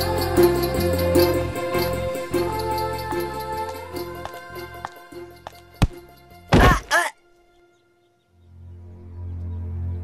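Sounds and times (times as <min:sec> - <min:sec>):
sharp thunk: 0:05.8 - 0:07.0
film music with bass line: 0:08.3 - 0:10.0.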